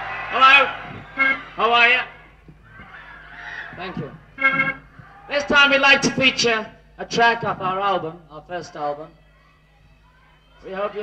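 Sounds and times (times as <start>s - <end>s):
man making nasal vowel sounds: 4.4s - 4.8s.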